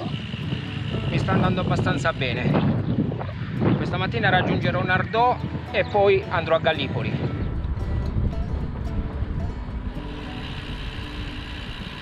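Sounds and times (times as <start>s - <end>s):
wind rumble on microphone: 0.0s - 12.0s
bicycle tyre hiss on asphalt: 10.0s - 12.0s.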